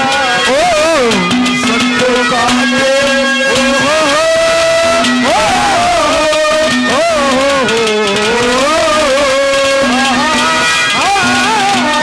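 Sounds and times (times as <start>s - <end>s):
sliding melodic note: 0.0s - 12.0s
steady drone: 0.0s - 12.0s.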